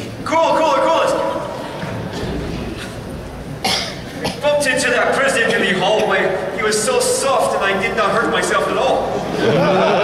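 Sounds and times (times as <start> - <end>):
audience hum in a hall: 0.0 - 10.0
person coughing: 3.6 - 4.6.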